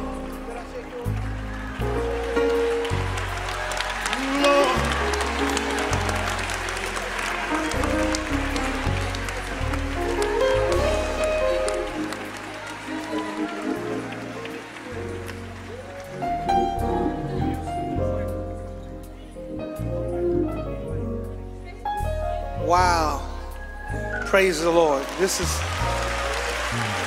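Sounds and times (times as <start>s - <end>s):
crowd chatter: 0.0s - 22.6s, 25.1s - 27.0s
gospel worship music: 0.0s - 27.0s
scattered clapping: 0.1s - 16.8s, 24.5s - 27.0s.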